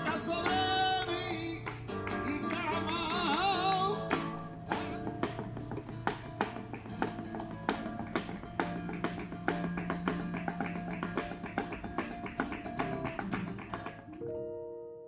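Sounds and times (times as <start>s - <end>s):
rapid hand claps and taps: 0.0s - 14.2s
acoustic guitar playing: 0.0s - 14.9s
piano chord ringing: 14.2s - 15.0s.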